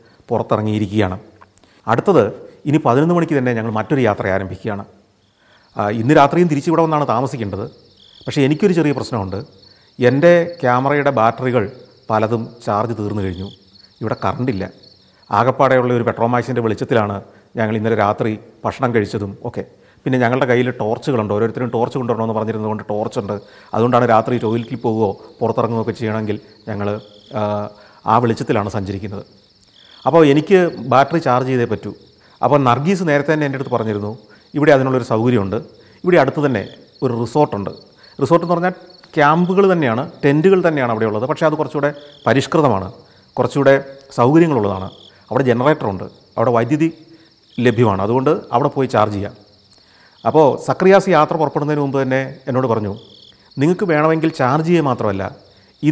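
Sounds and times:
man talking: 0.0s - 1.3s, 1.9s - 5.0s, 5.8s - 29.3s, 30.0s - 49.4s, 50.2s - 55.9s
crickets trilling: 0.0s - 55.9s.

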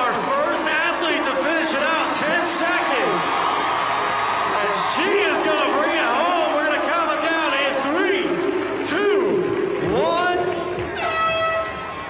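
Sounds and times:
crowd cheering and clapping: 0.0s - 12.0s.

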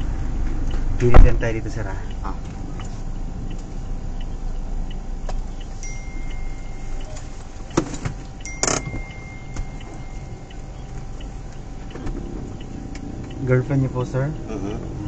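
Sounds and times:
car cabin engine hum: 0.0s - 15.0s
faint high steady tone: 5.6s - 12.8s.

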